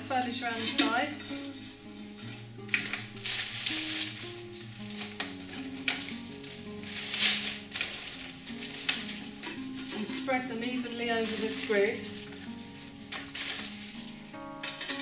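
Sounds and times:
background music held notes: 0.0s - 15.0s
leafy stems rustling: 0.0s - 15.0s.

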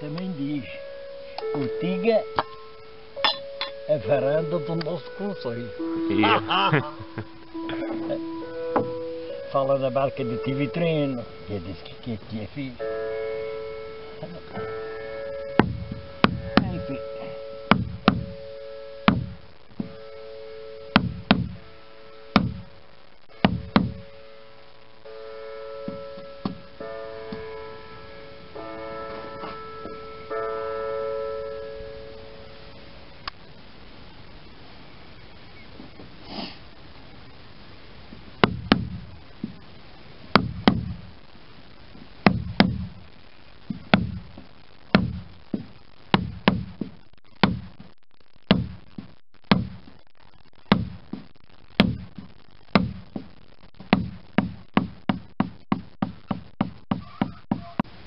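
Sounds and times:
mallet striking caulking iron: 3.2s - 3.8s, 15.6s - 16.9s, 17.7s - 18.3s, 19.1s - 20.0s, 20.9s - 21.6s, 22.4s - 22.6s, 23.4s - 24.0s, 38.4s - 39.0s, 40.4s - 41.0s, 42.2s - 42.9s, 43.9s - 44.2s, 44.9s - 45.2s, 46.2s - 46.8s, 47.4s - 47.8s, 48.5s - 48.8s, 49.5s - 49.8s, 50.7s - 51.0s, 51.8s - 52.1s, 52.8s - 53.0s, 54.0s - 57.9s.

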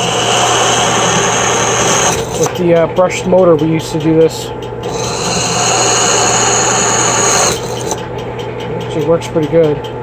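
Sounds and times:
drill bit cutting aluminium: 0.0s - 2.6s, 4.9s - 8.0s
drill press motor hum: 0.0s - 2.8s, 4.7s - 8.2s.

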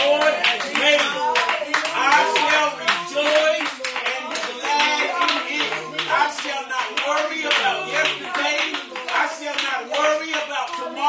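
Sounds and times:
hands clapping rhythmically: 0.0s - 11.0s.

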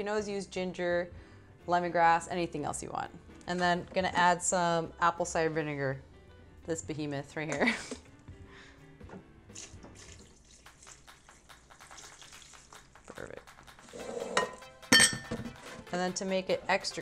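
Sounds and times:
soft background music: 0.0s - 17.0s
liquid pouring into blender jar: 9.5s - 13.2s.

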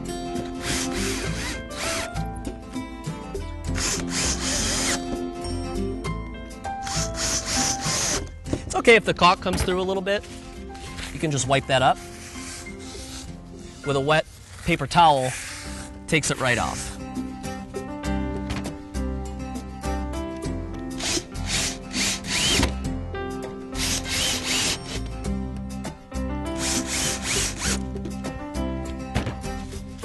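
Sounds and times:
background music: 0.0s - 30.0s
cordless drill driving screws: 0.5s - 2.1s, 3.7s - 5.0s, 6.8s - 8.3s, 16.5s - 17.0s, 21.0s - 22.7s, 23.8s - 25.1s, 26.6s - 27.8s
paper towel scrubbing wood: 10.2s - 17.0s.

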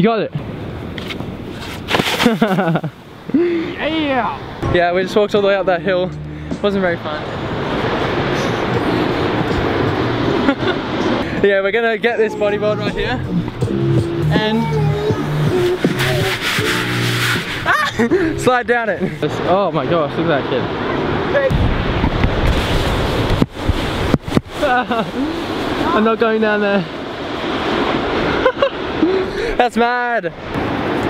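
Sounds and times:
surf: 0.0s - 31.0s
wind buffeting microphone: 12.7s - 29.5s.

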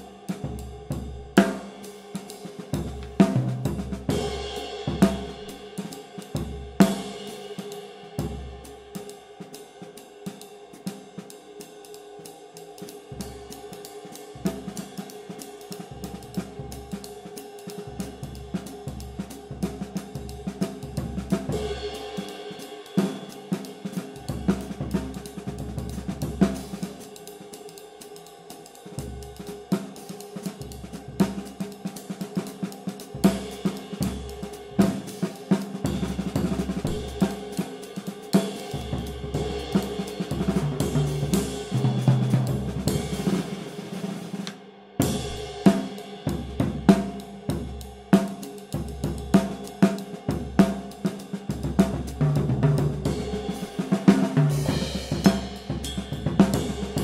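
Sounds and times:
ride cymbal pattern: 0.0s - 44.4s, 45.0s - 57.0s
drum kit groove: 0.0s - 57.0s.

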